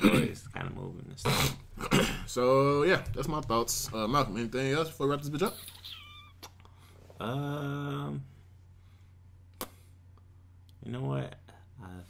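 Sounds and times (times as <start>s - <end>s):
low steady hum: 0.0s - 12.0s
man speaking: 2.2s - 5.8s.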